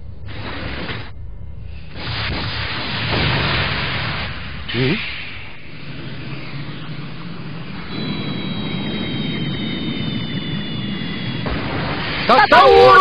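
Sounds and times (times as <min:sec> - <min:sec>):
rushing rumble: 0:00.0 - 0:13.0
falling high whistle: 0:07.8 - 0:11.5.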